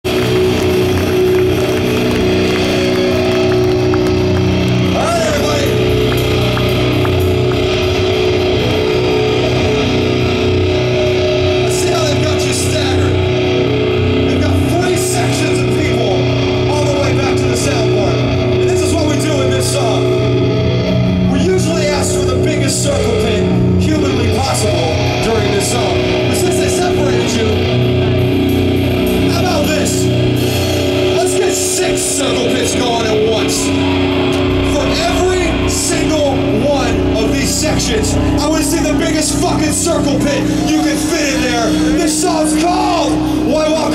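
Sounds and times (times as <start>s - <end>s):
rock band playing droning chords: 0.0s - 43.9s
man calling into microphone: 4.9s - 6.0s, 11.7s - 13.3s, 14.2s - 20.2s, 21.3s - 27.7s, 29.2s - 30.2s, 31.1s - 43.9s.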